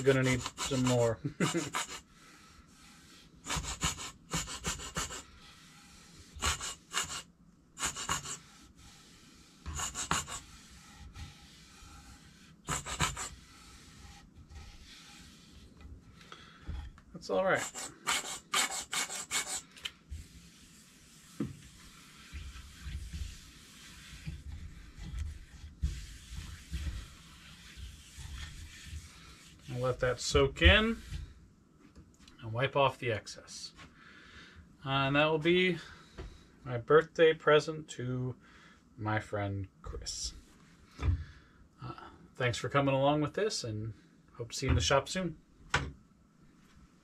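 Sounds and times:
squeeze bottle sputtering oil: 0.0s - 16.3s, 17.5s - 30.0s
hands rubbing oil into wood: 0.0s - 31.3s.

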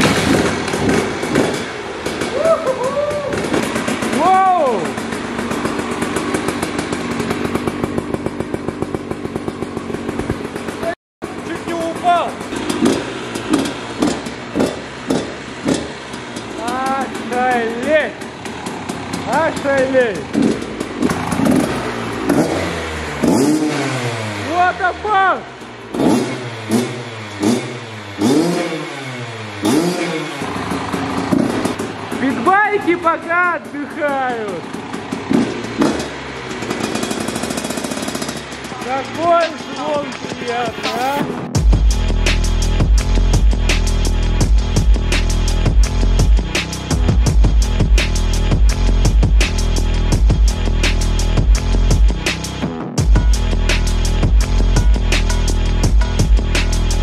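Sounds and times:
two-stroke engine idling: 0.0s - 28.6s, 29.3s - 57.0s
engine throttle blips: 0.0s - 57.0s.

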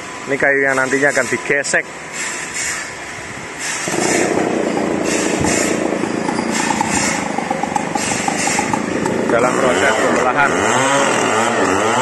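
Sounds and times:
chainsaw starting and running: 3.9s - 6.1s, 8.4s - 12.0s.

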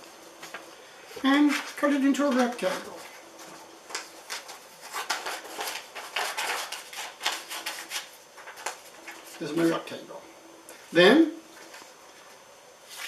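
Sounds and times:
paper rustling: 0.3s - 9.9s, 11.6s - 13.0s.

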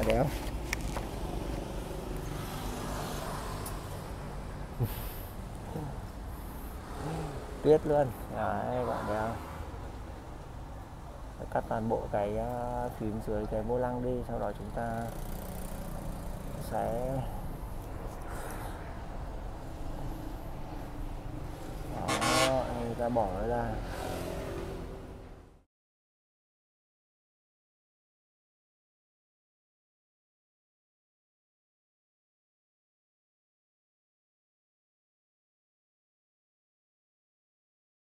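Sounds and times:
road traffic rumble: 0.0s - 25.6s.

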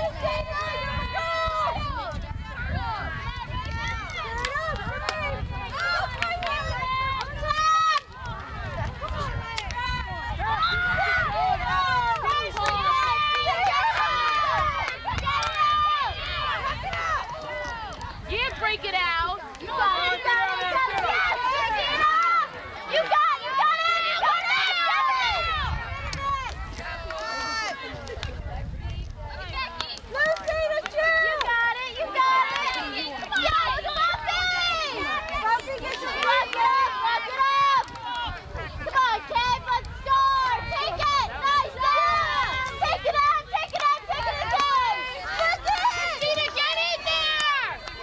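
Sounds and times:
crowd shouting and yelling: 0.0s - 48.0s.

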